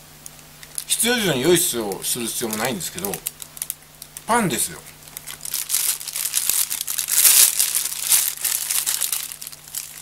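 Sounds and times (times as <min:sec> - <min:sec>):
plastic wrapper crinkling: 0:01.6 - 0:04.3, 0:05.0 - 0:10.0.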